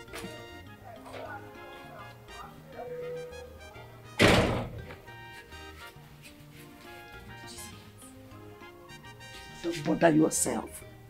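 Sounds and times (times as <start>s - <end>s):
background music: 0.0s - 11.0s
door slamming shut: 4.2s - 5.0s.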